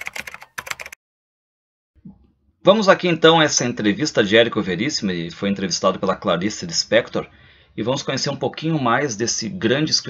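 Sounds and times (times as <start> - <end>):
computer keyboard typing: 0.0 - 1.0.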